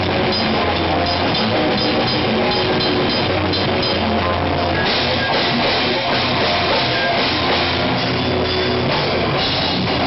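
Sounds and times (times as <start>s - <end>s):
fast drumming: 0.0s - 10.0s
heavy metal band playing live: 0.0s - 10.0s.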